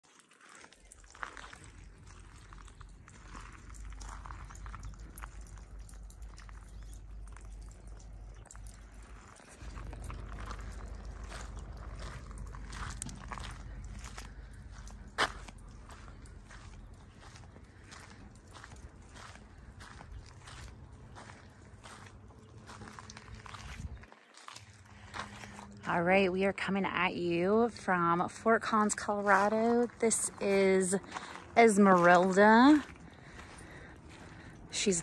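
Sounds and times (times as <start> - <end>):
footsteps on gravel: 0.0 - 35.0
low steady rumble: 0.8 - 35.0.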